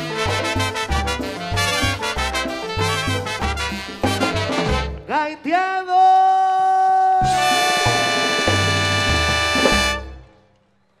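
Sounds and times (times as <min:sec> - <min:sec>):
dance orchestra chord: 0:07.3 - 0:10.3.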